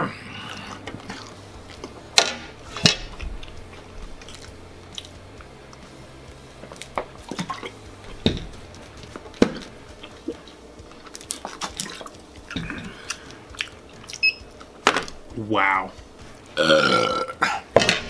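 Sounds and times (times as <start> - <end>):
man chewing and swallowing: 3.1 - 5.8, 6.6 - 14.8.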